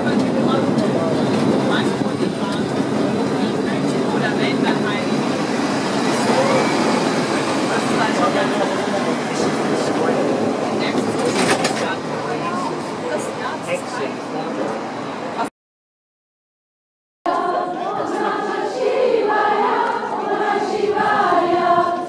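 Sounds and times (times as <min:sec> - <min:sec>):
tram wheels rumbling on rails: 0:00.0 - 0:15.5.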